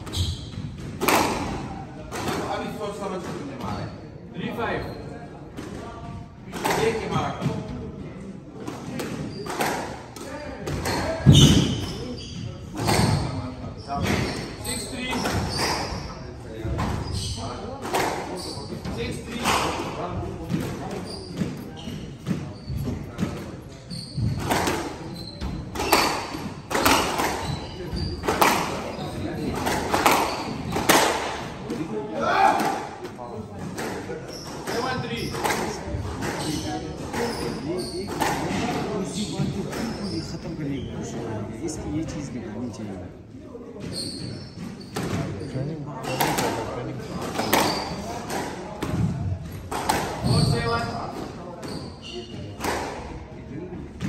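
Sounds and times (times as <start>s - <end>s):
squash ball hitting rackets and walls: 0.0s - 3.8s, 8.6s - 40.2s, 43.8s - 53.2s
spectators chattering: 0.0s - 54.0s.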